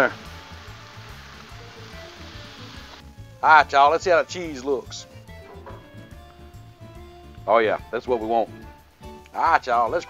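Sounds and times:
water sizzling on hot griddle: 0.0 - 4.7
background music: 0.0 - 10.0.

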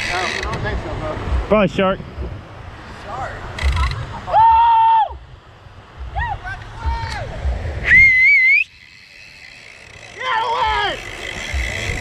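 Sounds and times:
person whistling: 7.8 - 8.7.

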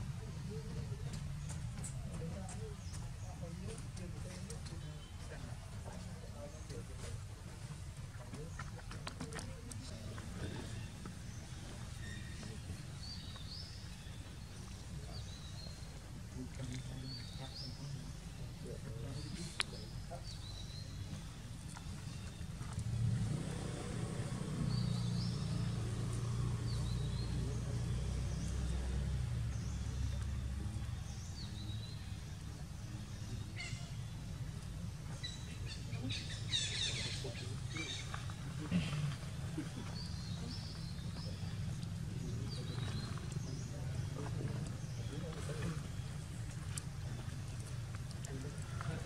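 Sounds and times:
vehicle engine rumble: 0.0 - 49.0
bird chirping: 0.2 - 49.0.

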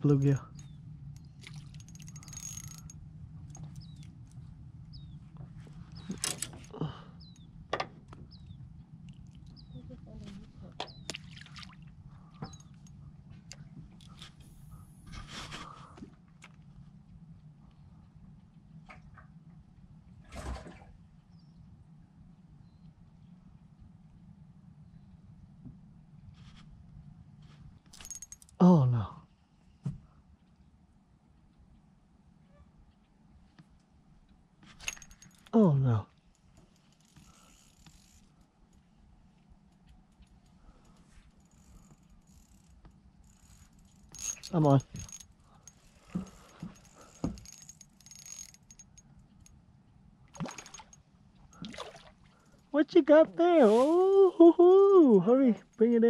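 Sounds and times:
steady low hum: 0.0 - 56.0
fish splashing at water surface: 50.4 - 51.0, 51.6 - 52.4.

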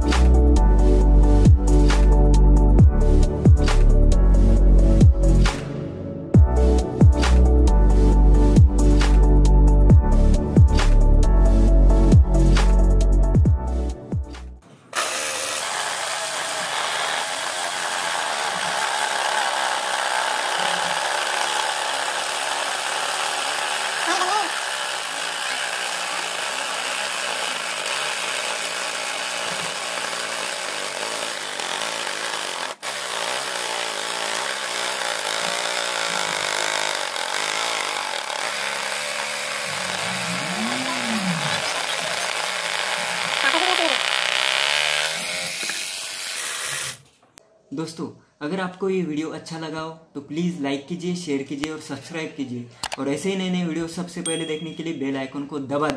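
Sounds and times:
jigsaw sawing through board: 14.9 - 47.0.

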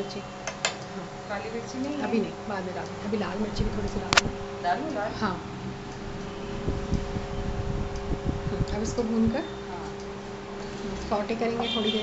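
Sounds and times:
woman talking: 0.0 - 5.5, 8.5 - 10.0, 10.8 - 12.0.

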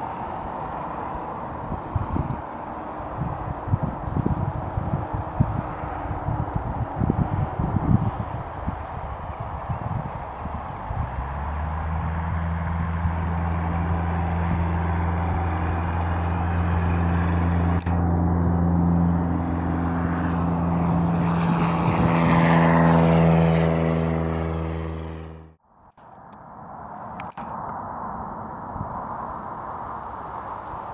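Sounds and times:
propeller plane engine drone: 0.0 - 30.9.

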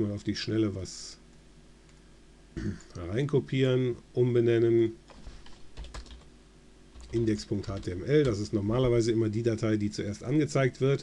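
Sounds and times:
keyboard typing: 5.1 - 6.3, 7.0 - 8.5.

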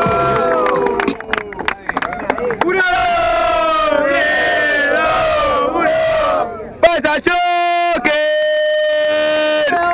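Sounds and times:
crowd shouting long cry: 0.0 - 1.1, 2.7 - 8.2.

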